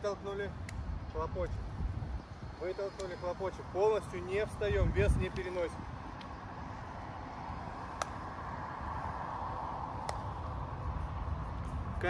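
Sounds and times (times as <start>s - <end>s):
distant city traffic hum: 0.0s - 12.0s
sharp hand claps: 8.0s - 8.2s.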